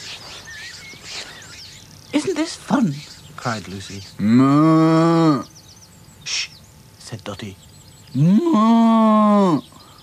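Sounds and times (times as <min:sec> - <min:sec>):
cow mooing: 0:04.2 - 0:05.5.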